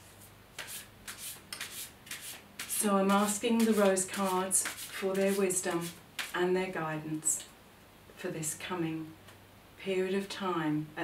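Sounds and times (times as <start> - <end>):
cards being shuffled: 0.6 - 6.4.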